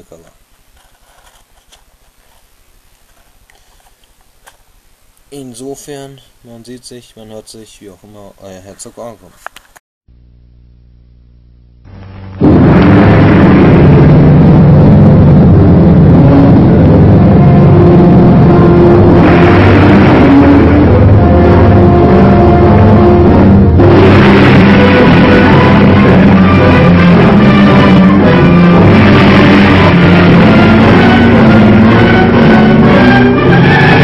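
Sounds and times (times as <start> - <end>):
low steady hum: 10.1 - 34.0
orchestral music with brass chords: 18.6 - 34.0.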